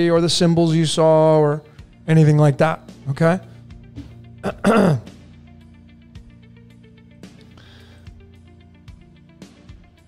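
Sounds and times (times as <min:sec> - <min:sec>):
quiet background music: 0:00.0 - 0:10.0
man clearing his throat: 0:04.0 - 0:05.2.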